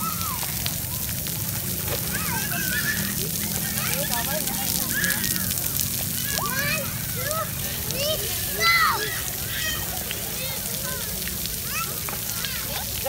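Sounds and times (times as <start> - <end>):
children calling out: 0.0 - 13.0
fountain jets spattering on stone: 0.0 - 13.0.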